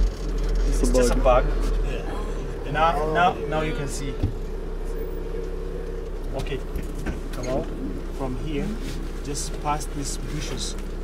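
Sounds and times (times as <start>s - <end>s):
minibus engine humming: 0.0s - 11.0s.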